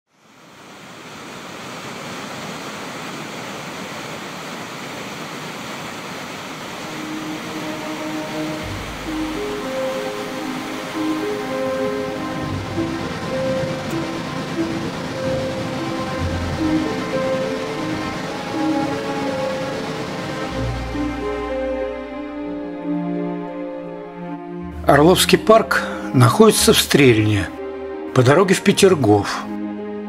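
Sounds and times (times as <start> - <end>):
water pouring over a dam spillway: 0.6 - 21.2
background music with bass: 20.5 - 28.6.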